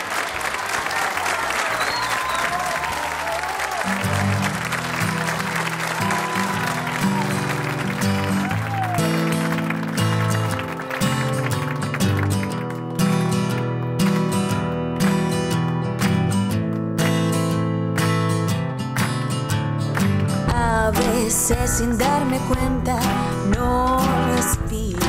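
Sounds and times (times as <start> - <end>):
audience applauding and cheering: 0.0 - 14.4.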